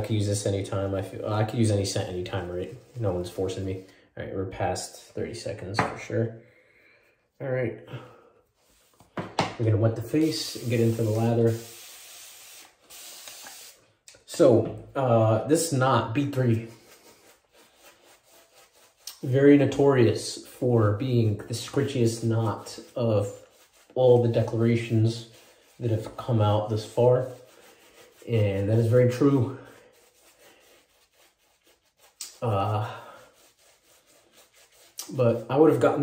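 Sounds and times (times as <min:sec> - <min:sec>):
shaving brush rubbing lather: 0:00.0 - 0:03.8, 0:10.0 - 0:14.4, 0:15.6 - 0:36.0
water hissing: 0:10.2 - 0:13.8.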